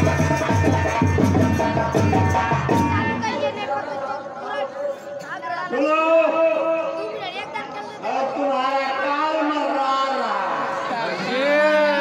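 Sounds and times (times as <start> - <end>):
voices talking amid chatter: 0.0 - 12.0.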